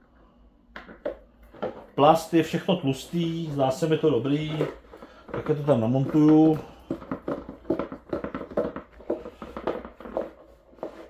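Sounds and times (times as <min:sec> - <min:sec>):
plastic clicks knocks and scrapes: 0:04.5 - 0:11.0.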